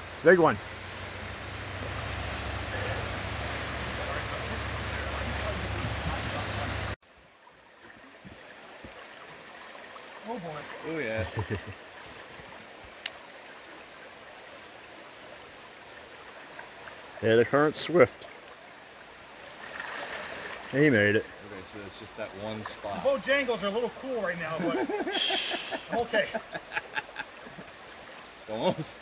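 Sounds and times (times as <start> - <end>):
creek water rushing over rocks: 0.0 - 29.0.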